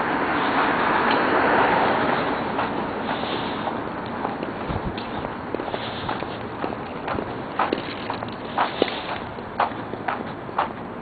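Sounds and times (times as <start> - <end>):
footsteps on pavement: 0.0 - 11.0
low street background: 0.0 - 11.0.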